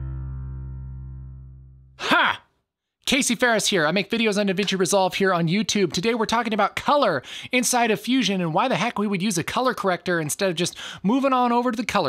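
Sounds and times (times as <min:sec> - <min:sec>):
held low musical tone: 0:00.0 - 0:02.0
breathy voiced exclamation: 0:02.0 - 0:02.5.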